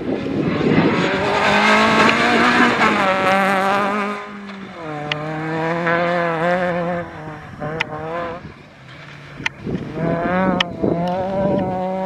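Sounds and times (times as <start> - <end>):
rally car engine high revs: 0.2 - 12.0.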